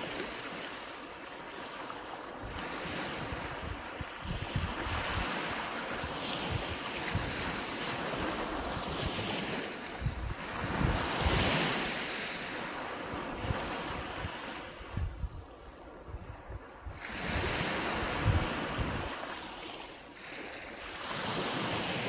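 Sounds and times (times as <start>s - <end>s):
small waves breaking on a beach: 0.0s - 22.0s
wind buffeting microphone: 2.3s - 19.6s.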